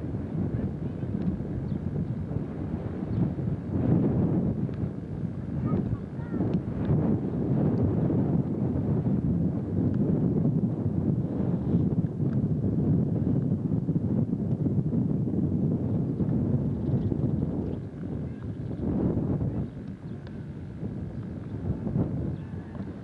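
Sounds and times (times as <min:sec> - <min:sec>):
wind buffeting microphone: 0:00.0 - 0:23.0
faint voices: 0:00.3 - 0:01.2, 0:05.6 - 0:06.4, 0:18.1 - 0:18.7.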